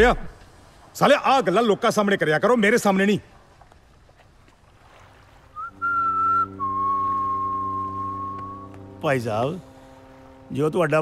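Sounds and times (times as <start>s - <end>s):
clear high whistle: 5.5s - 8.8s
low steady drone: 5.8s - 11.0s.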